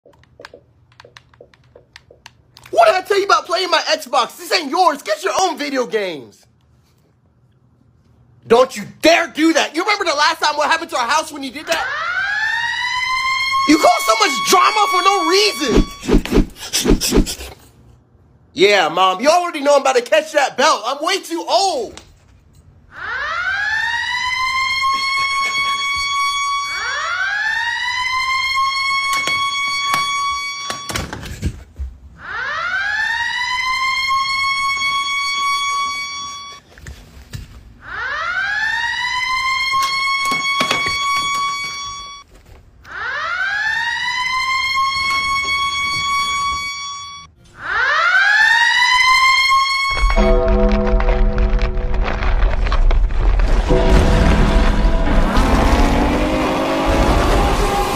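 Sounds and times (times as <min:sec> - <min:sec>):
siren wailing: 0:11.6 - 0:16.4, 0:22.9 - 0:31.0, 0:32.2 - 0:36.6, 0:37.8 - 0:42.2, 0:42.9 - 0:57.9.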